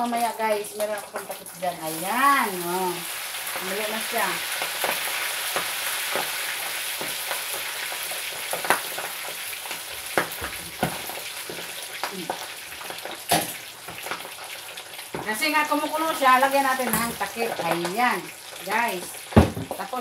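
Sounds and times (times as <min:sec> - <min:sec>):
oil sizzling: 0:00.0 - 0:20.0.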